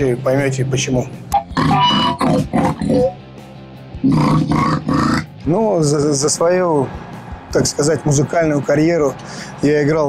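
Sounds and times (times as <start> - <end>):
harsh growled vocals: 1.6 - 3.2, 4.0 - 5.3.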